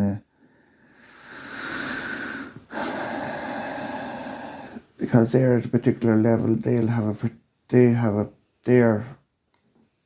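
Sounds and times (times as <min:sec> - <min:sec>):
person breathing deeply: 0:00.3 - 0:05.0.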